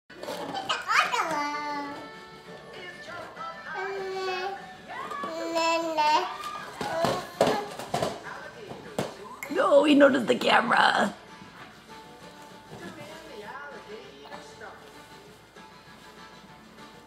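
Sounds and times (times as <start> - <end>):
baby's voice: 3.7 - 4.6, 5.2 - 7.7.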